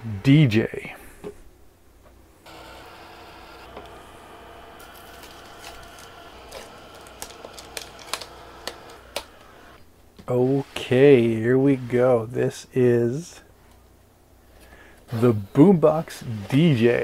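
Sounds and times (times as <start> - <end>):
hair dryer running: 2.5 - 9.8.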